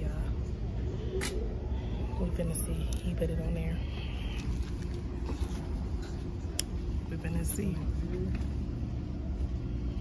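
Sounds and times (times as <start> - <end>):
running machines rumbling: 0.0 - 10.0.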